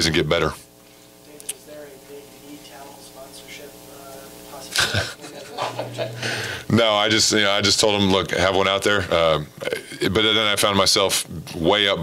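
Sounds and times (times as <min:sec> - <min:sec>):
man laughing in breathy bursts: 0:04.7 - 0:06.7.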